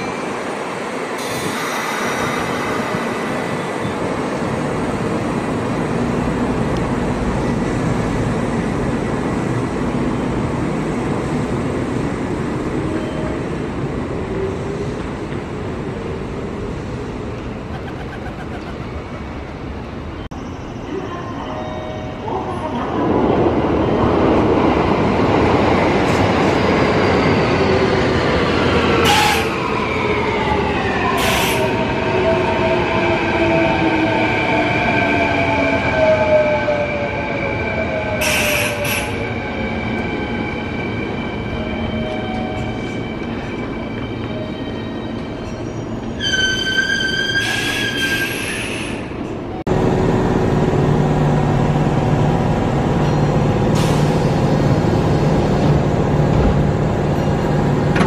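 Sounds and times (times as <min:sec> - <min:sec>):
high wheel squeal: 0:44.8 - 0:49.1
stopped train humming: 0:48.3 - 0:58.0.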